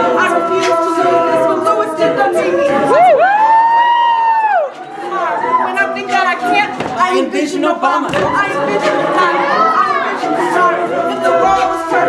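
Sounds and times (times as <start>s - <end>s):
beatboxed vocal percussion: 0.0s - 3.0s, 5.6s - 12.0s
a cappella backing chords: 0.0s - 12.0s.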